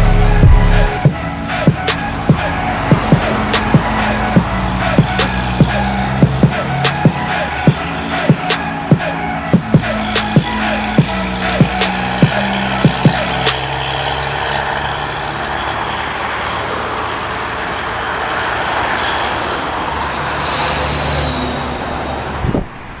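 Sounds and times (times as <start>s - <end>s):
heavy trucks on highway: 0.0s - 23.0s.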